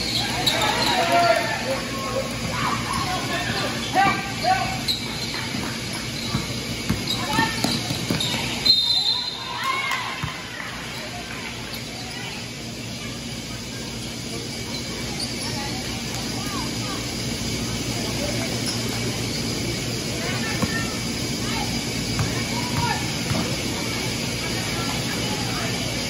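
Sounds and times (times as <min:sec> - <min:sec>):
players and spectators shouting: 0:00.0 - 0:05.3, 0:06.8 - 0:13.5
basketball bouncing: 0:05.4 - 0:08.5, 0:22.1 - 0:23.6
referee's whistle: 0:08.2 - 0:09.7.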